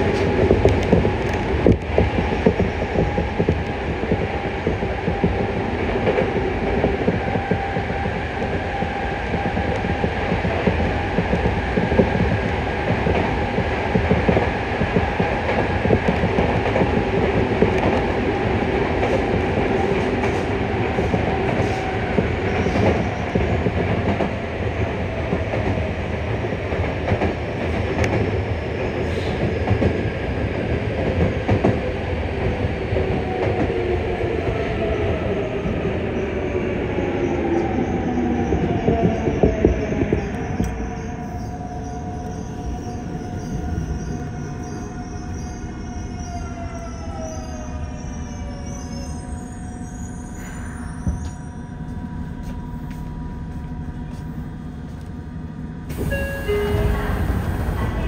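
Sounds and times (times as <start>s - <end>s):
train wheels rumbling on rail: 0.0s - 58.0s
train inverter and motor whine: 46.8s - 58.0s.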